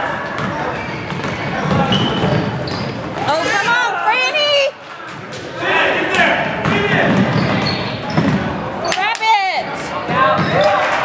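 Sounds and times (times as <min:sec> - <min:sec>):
crowd voices and shouts: 0:00.0 - 0:11.0
basketball bouncing on hardwood floor: 0:06.6 - 0:08.5.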